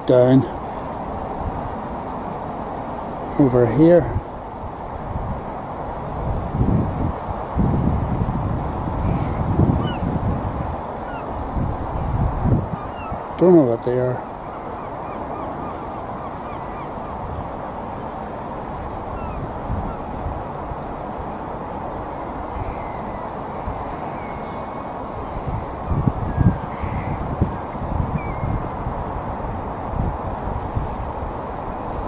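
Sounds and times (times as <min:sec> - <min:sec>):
flock of shorebirds calling: 0:02.9 - 0:04.1, 0:09.0 - 0:10.1, 0:10.8 - 0:12.1, 0:12.7 - 0:18.2, 0:19.0 - 0:20.2, 0:22.4 - 0:28.5.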